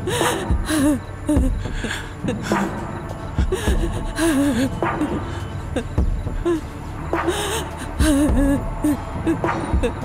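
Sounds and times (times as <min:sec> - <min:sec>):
background music: 0:00.0 - 0:10.0
person sobbing: 0:00.0 - 0:10.0.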